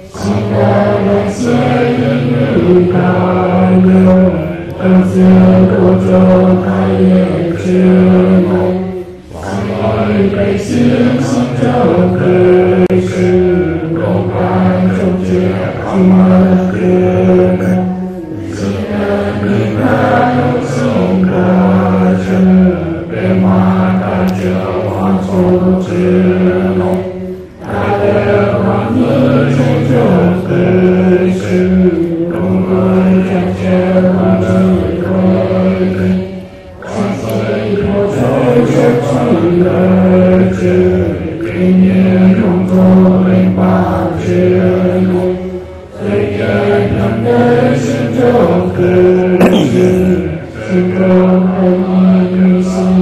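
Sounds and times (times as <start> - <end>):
man chanting a prayer: 49.0 - 51.0.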